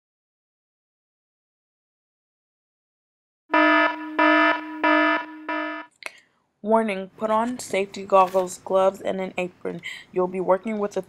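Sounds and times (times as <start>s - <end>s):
buzzing alarm beeps: 3.5s - 5.9s.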